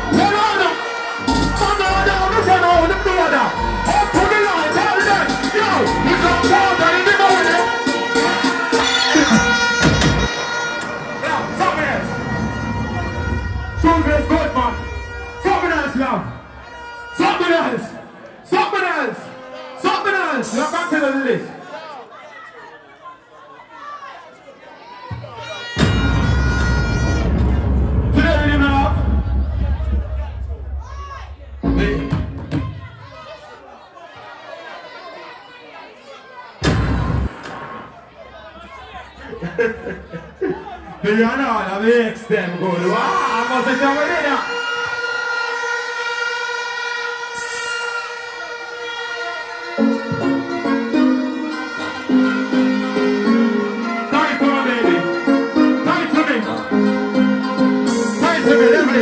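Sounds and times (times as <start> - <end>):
man talking into microphone: 0.0 - 7.8, 13.7 - 16.4, 28.1 - 30.6, 31.6 - 32.3, 38.6 - 44.6, 54.1 - 55.0, 55.8 - 56.7, 58.2 - 59.0
horn-like chord over speakers: 0.0 - 18.1, 31.6 - 32.4, 42.8 - 59.0
chatter: 20.5 - 27.8, 32.4 - 59.0.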